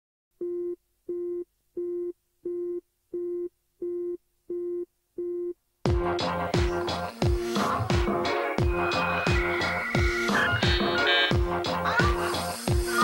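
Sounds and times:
electronic beat with heavy bass: 5.9 - 13.0.

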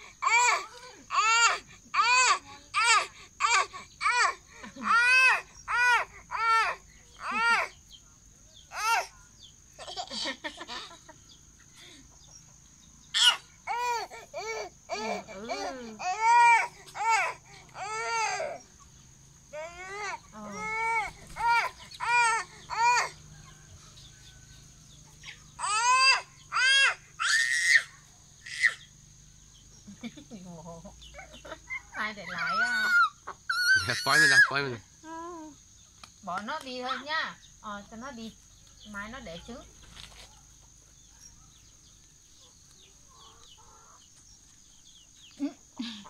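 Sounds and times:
toddler crying: 0.2 - 7.8, 8.7 - 9.1, 13.2 - 18.6, 19.5 - 23.2, 25.6 - 28.8
chicks peeping: 39.7 - 46.0.

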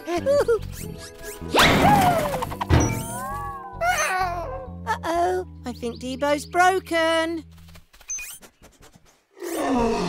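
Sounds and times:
music: 0.0 - 7.8.

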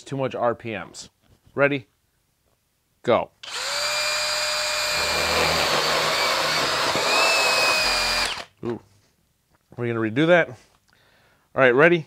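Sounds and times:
hammer drill boring into wood: 3.4 - 8.6.

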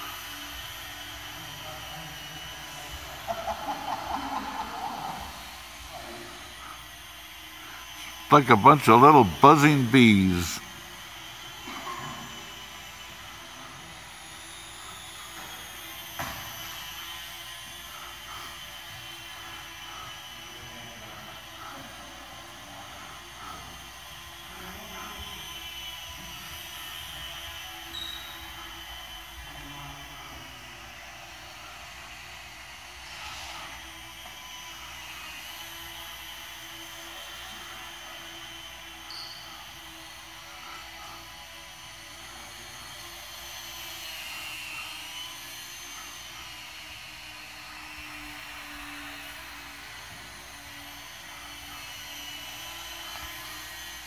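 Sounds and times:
electric model plane motors buzzing: 0.0 - 8.3, 10.6 - 54.0.

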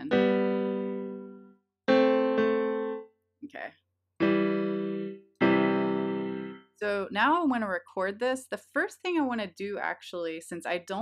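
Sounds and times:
piano chords: 0.0 - 3.2, 4.2 - 6.8.

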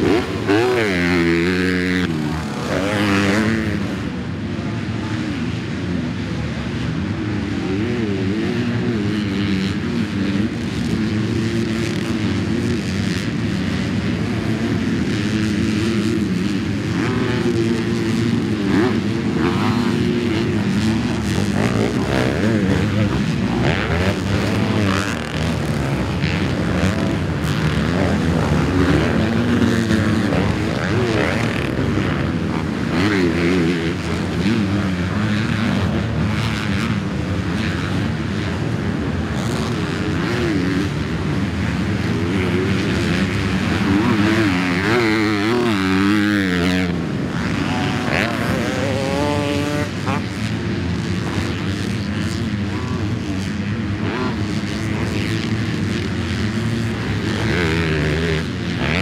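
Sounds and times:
motocross bike engine revving: 0.0 - 59.0
other dirt bikes: 0.0 - 59.0.

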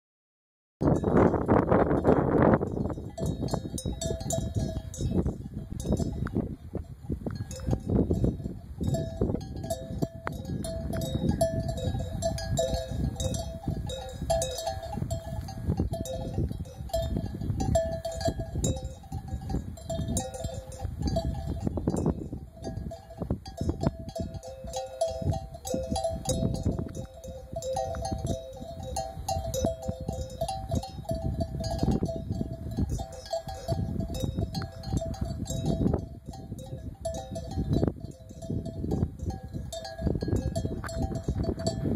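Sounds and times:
sheep bells clanking: 0.8 - 41.9.

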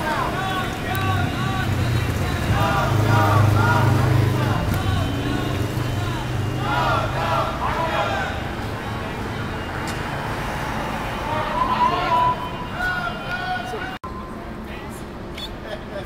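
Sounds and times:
people talking: 0.0 - 9.9
vehicle engine passing: 0.0 - 11.8.

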